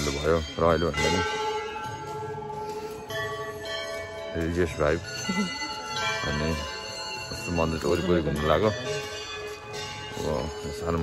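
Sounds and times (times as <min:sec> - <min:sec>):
bell ringing: 0:00.0 - 0:11.0.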